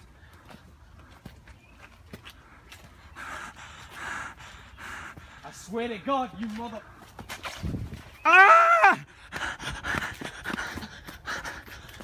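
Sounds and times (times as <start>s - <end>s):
person panting hard: 0.0s - 1.4s, 2.2s - 5.7s, 9.0s - 12.0s.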